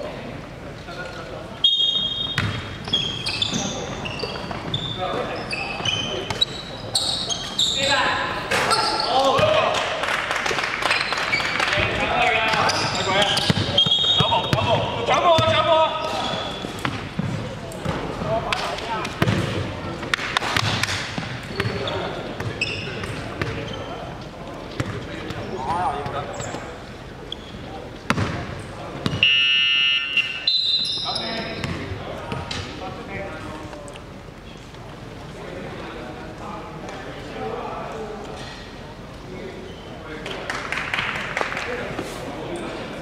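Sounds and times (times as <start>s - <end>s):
sneaker squeaks on floor: 0.9s - 9.4s, 10.9s - 11.9s, 12.5s - 18.0s, 20.6s - 24.2s, 24.8s - 28.4s, 29.0s - 32.5s
basketball bouncing: 2.4s - 2.8s, 13.4s - 15.6s, 16.8s - 18.0s, 19.2s - 19.6s, 24.8s - 25.0s, 28.1s - 28.4s, 31.6s - 32.4s
players calling out: 10.9s - 17.2s.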